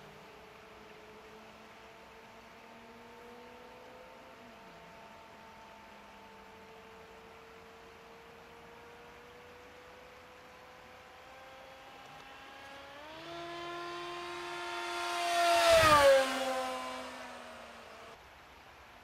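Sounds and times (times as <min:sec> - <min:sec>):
model plane motor whine: 0:00.0 - 0:18.2.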